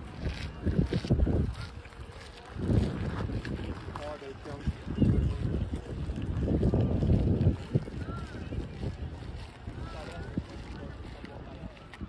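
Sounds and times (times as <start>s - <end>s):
faint voices: 0.0s - 12.0s
wind buffeting microphone: 0.0s - 12.0s.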